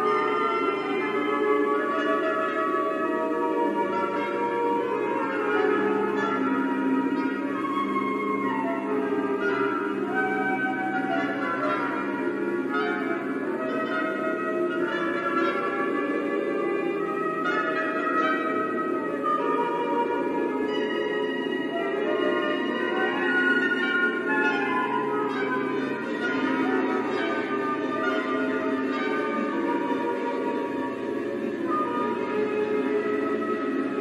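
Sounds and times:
orchestra playing sustained chord: 0.0 - 34.0.

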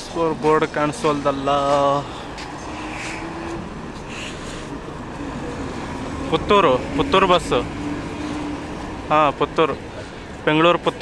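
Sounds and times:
diesel buses rumbling: 0.0 - 11.0.

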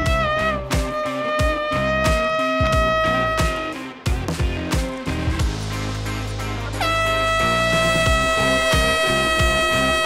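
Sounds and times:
air horn long blast: 0.0 - 4.0, 6.8 - 10.0
background music with a beat: 0.0 - 10.0.

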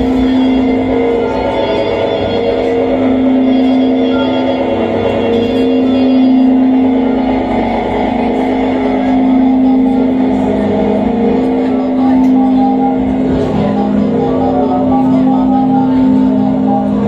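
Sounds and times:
low electronic drone with hiss: 0.0 - 17.0.

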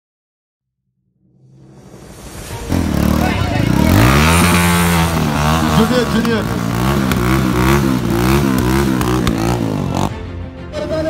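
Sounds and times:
motorcycle engine revving: 2.5 - 10.3.

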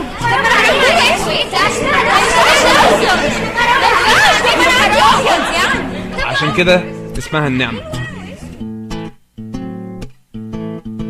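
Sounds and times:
babble of voices: 0.0 - 8.6.

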